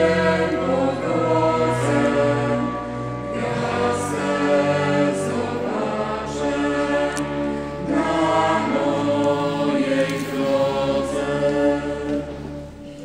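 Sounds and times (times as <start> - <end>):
choir singing in harmony: 0.0 - 13.0.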